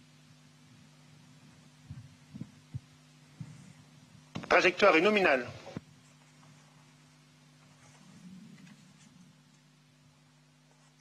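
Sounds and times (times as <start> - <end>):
faint low steady hum: 0.0 - 11.0
soft low thumps: 1.8 - 4.4.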